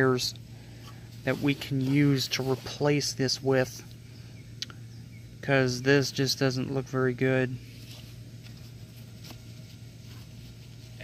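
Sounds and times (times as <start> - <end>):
background hum and hiss: 0.0 - 11.0.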